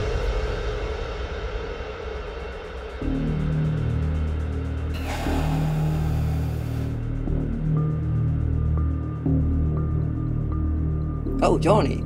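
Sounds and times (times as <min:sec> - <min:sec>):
low suspense drone: 0:03.0 - 0:11.4
low rumble: 0:03.6 - 0:08.7.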